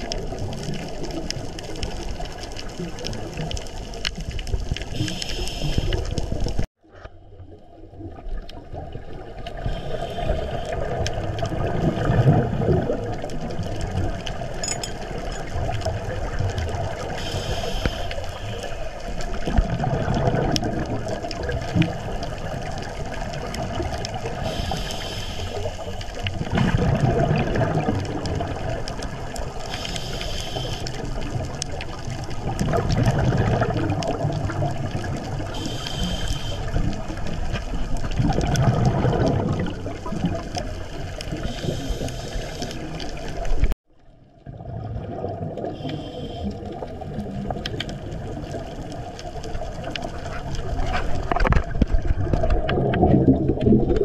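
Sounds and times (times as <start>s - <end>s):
rumble of exhaled bubbles: 0.0s - 54.0s
regulator inhalation hiss: 5.0s - 6.2s, 9.6s - 10.8s, 17.2s - 18.9s, 24.4s - 26.2s, 29.6s - 31.0s, 35.5s - 36.8s, 41.4s - 42.9s, 45.8s - 46.6s.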